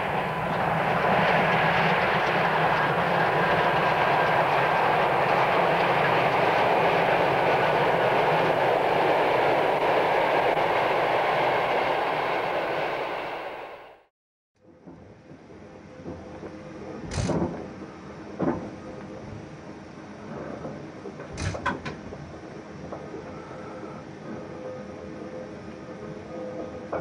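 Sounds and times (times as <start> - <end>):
steam locomotive running: 0.0 - 14.1.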